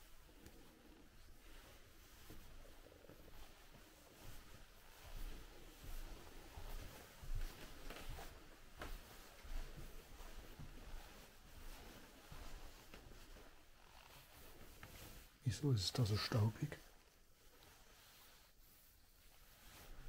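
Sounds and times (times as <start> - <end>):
soft footsteps: 0.0 - 20.0.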